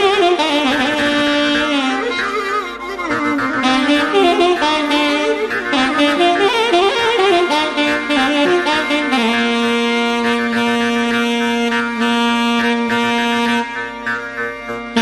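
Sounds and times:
alto saxophone melody: 0.0 - 15.0.

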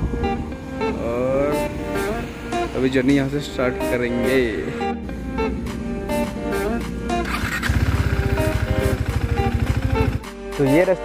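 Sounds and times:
melodic background music: 0.0 - 11.0
motorcycle engine: 7.1 - 10.3.

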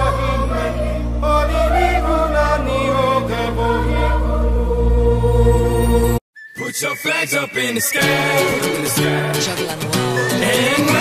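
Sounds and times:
song with sung vocal melody: 0.0 - 11.0.

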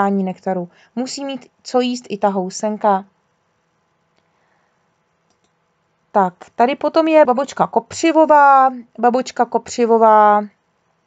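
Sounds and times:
faint clicks: 5.2 - 5.6.

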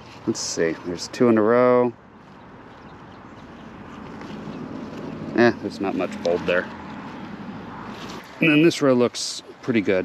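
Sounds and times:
rustling and crackling leaves: 0.0 - 10.0.

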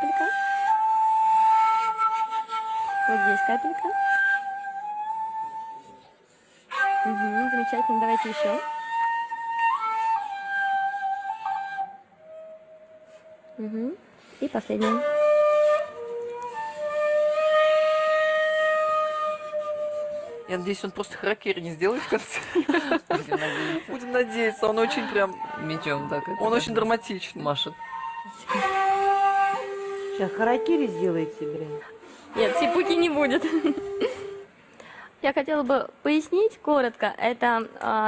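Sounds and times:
bamboo flute long note: 0.0 - 6.1, 6.7 - 14.0, 14.7 - 20.6, 23.4 - 34.5.

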